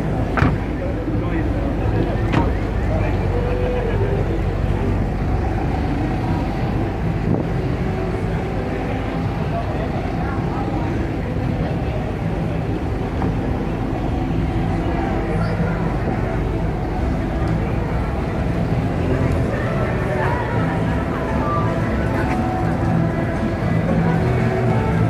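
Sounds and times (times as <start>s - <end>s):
indistinct voices: 0.0s - 25.0s
car door shutting: 0.3s - 0.7s.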